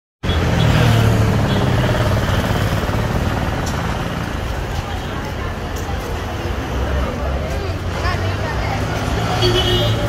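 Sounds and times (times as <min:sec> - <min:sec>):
street noise: 0:00.2 - 0:10.0
vehicle engine humming: 0:00.2 - 0:10.0.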